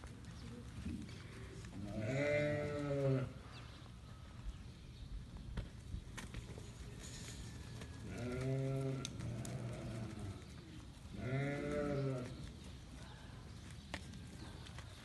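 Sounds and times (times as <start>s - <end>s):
sheep bleating: 1.8s - 3.4s, 8.1s - 10.4s, 11.2s - 12.4s.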